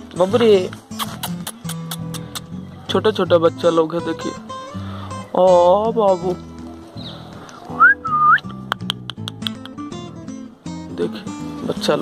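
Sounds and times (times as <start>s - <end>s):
acoustic guitar music: 0.0s - 12.0s
person whistling: 7.8s - 8.6s.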